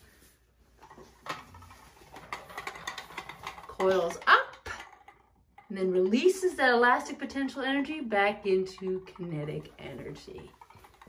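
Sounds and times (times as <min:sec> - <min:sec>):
toy wheel clicking on wood floor: 0:00.8 - 0:11.0.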